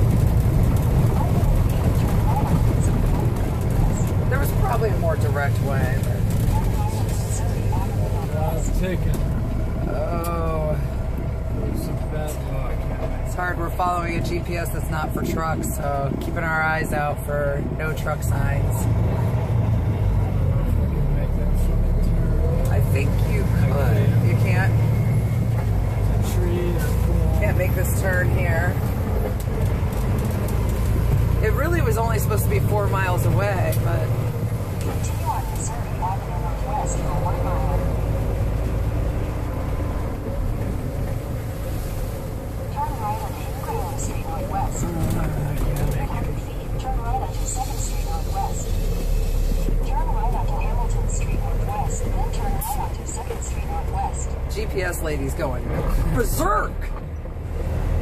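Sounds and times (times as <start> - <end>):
indistinct voices: 0.0 - 41.4, 42.5 - 57.0
road noise: 0.0 - 58.0
truck engine rumble: 0.0 - 58.0.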